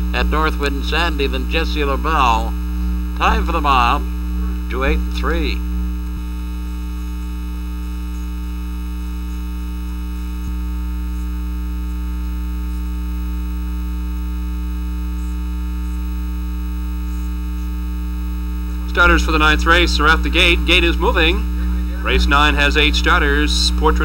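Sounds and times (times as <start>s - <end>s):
electrical mains hum: 0.0s - 24.0s.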